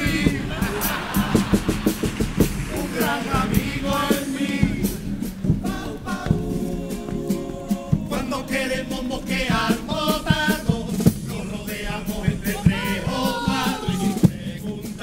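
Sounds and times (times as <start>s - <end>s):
group singing together: 0.0s - 15.0s
steady drum beat: 0.0s - 15.0s.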